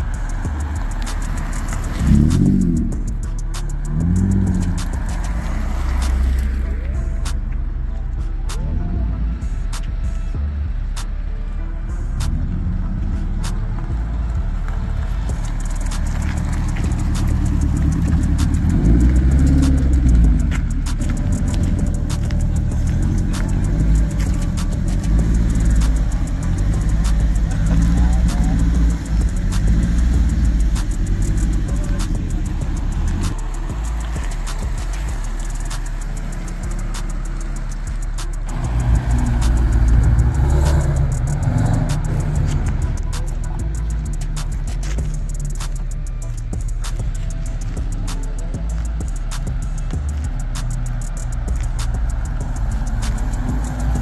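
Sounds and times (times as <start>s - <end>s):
car engines running: 0.0s - 54.0s.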